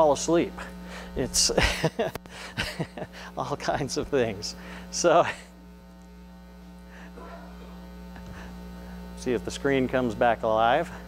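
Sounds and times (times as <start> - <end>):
electrical mains hum and buzz: 0.0 - 11.0.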